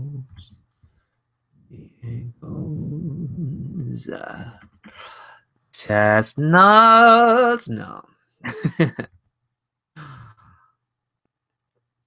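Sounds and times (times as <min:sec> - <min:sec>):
man sighing: 0:04.3 - 0:05.4, 0:10.0 - 0:10.6.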